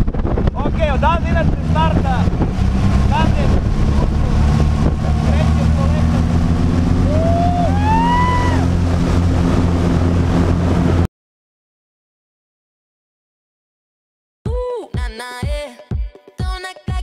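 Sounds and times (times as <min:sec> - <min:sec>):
small plane engine and propeller: 0:00.0 - 0:11.1
wind on microphone: 0:00.0 - 0:11.1
passenger whooping: 0:00.8 - 0:09.8.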